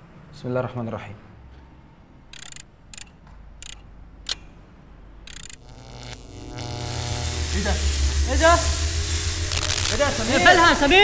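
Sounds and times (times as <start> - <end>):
low electric hum: 2.2 - 11.0
machine clicks and whirs: 2.3 - 4.4, 5.2 - 11.0.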